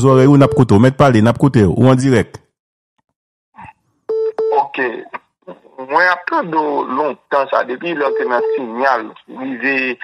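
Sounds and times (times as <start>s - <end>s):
telephone line beep: 0.4s - 0.7s, 4.1s - 4.6s, 8.0s - 8.8s
person talking over phone: 4.4s - 10.0s.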